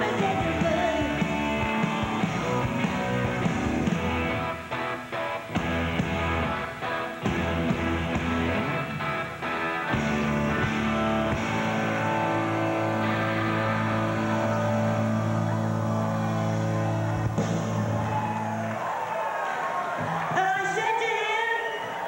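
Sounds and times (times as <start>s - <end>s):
electric guitars sustained chord: 0.0s - 18.7s
crowd noise: 0.0s - 22.0s.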